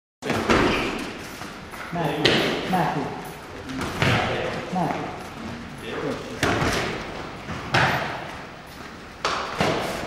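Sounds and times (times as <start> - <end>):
voices echoing in a gym: 0.2 - 10.0.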